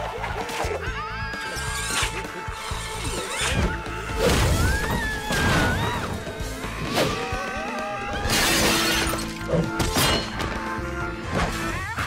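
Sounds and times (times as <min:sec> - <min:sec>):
background music: 0:00.0 - 0:12.0
glass shattering and crashing: 0:08.2 - 0:10.5.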